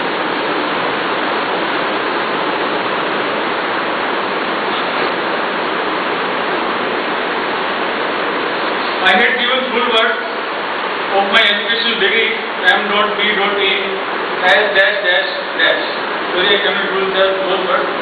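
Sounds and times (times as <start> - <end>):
steady loud hiss: 0.0 - 18.0.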